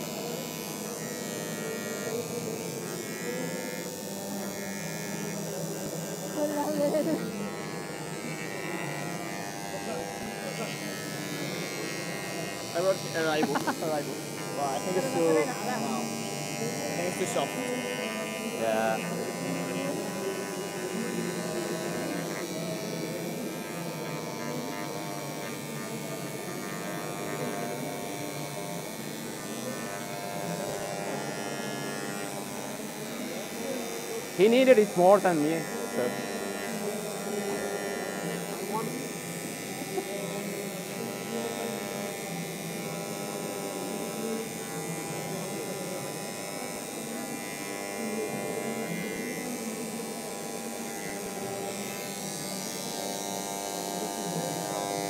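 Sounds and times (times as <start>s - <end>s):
electric engraving pen buzzing: 0.0s - 55.0s
people talking: 0.0s - 55.0s.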